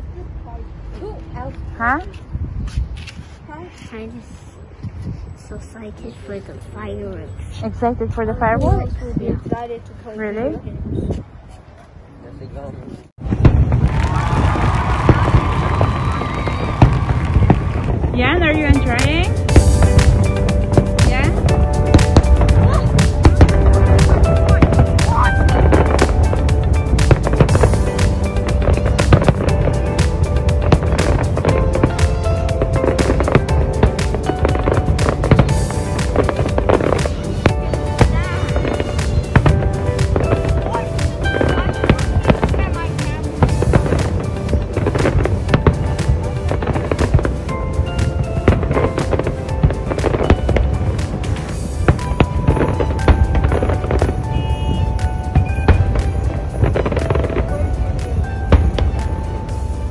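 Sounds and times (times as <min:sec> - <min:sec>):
fireworks bangs and crackles: 0:13.2 - 0:59.9
low rumble: 0:13.2 - 0:59.9
music playing: 0:14.6 - 0:59.9.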